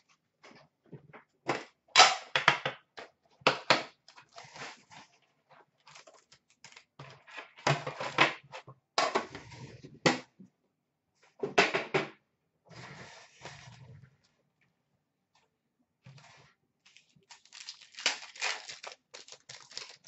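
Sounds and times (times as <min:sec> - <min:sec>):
cardboard and packaging rustling: 0:04.1 - 0:08.2, 0:16.2 - 0:20.0.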